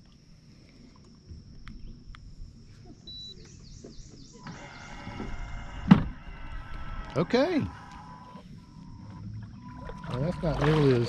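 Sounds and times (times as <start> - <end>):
electric motor whining: 4.4 - 9.2.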